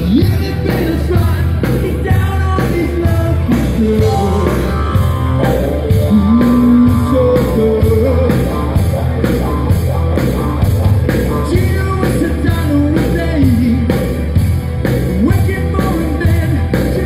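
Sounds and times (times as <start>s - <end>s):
lead singer: 0.0s - 9.5s, 11.0s - 17.0s
live rock band playing: 0.0s - 17.0s.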